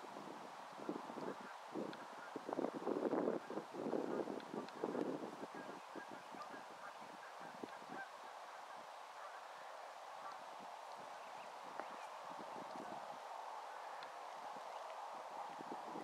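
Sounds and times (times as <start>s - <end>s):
grouse clucking: 5.5s - 10.6s.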